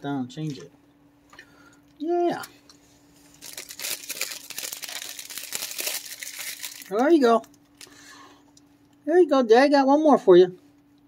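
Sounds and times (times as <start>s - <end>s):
plastic wrapper crinkling: 3.2s - 8.0s.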